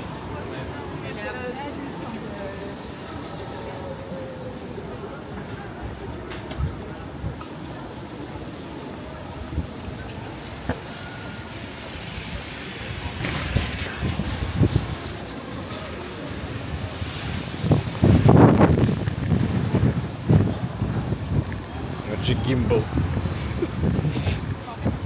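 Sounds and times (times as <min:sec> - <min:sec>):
traffic on wet road: 0:00.0 - 0:25.0
wind buffeting microphone: 0:09.0 - 0:25.0.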